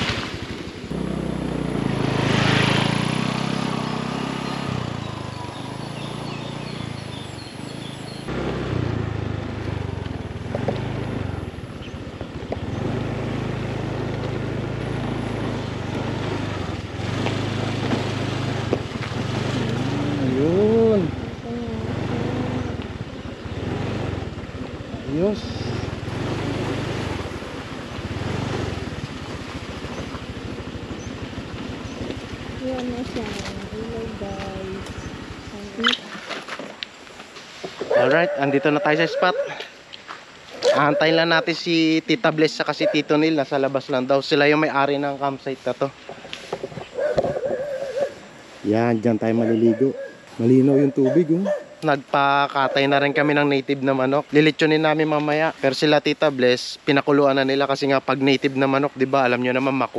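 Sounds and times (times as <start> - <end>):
motorcycle engine: 0.0 - 59.9
voice-like calls: 32.6 - 36.2.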